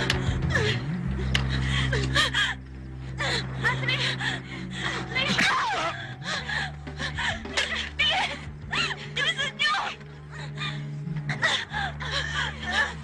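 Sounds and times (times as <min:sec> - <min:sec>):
dramatic film score drone: 0:00.0 - 0:13.0.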